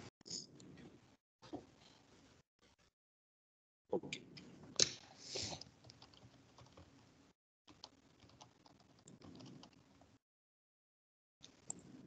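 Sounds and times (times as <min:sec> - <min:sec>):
keyboard and mouse clicks: 0:07.7 - 0:09.8.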